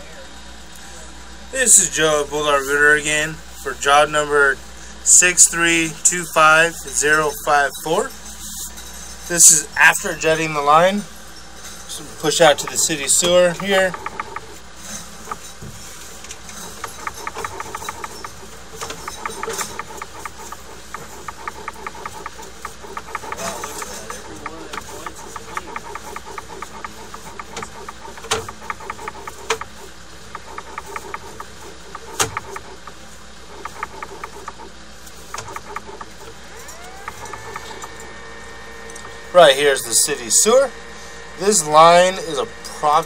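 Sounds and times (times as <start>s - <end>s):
pitched whine: 5.1s - 43.0s
rhythmic clicking of push rod: 11.9s - 38.1s
sharp knocks: 13.6s - 14.6s, 16.6s - 32.9s, 33.6s - 34.7s, 35.3s - 36.3s.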